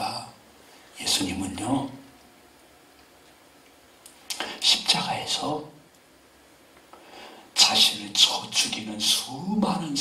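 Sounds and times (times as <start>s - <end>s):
man speaking into microphone: 0.0s - 2.1s, 4.3s - 5.8s, 7.6s - 10.0s.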